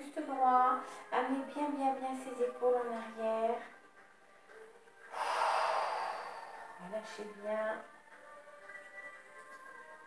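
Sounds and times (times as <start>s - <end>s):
person exhaling hard: 5.1s - 6.8s.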